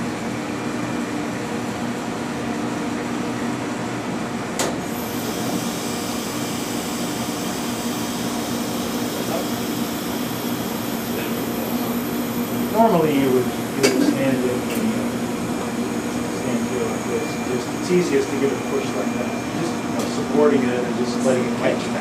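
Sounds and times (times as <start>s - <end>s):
vacuum pumps humming: 0.0s - 22.0s
faint high whine: 15.8s - 20.8s.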